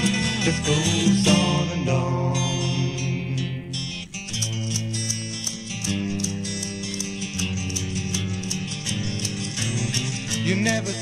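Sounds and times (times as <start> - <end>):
guitar playing: 0.0 - 11.0
steady ticking beat: 0.0 - 11.0.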